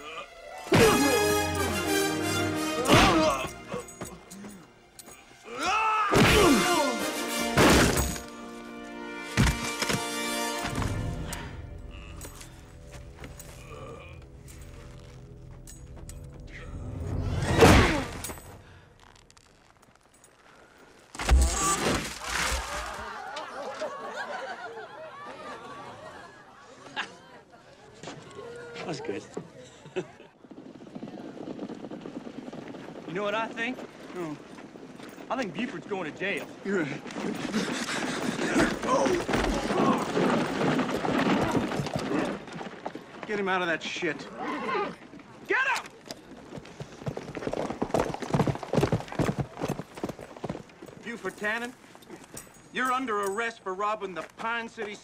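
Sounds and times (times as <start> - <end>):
horse hooves clopping on dirt: 3.4 - 5.4, 12.2 - 16.5, 30.3 - 55.0.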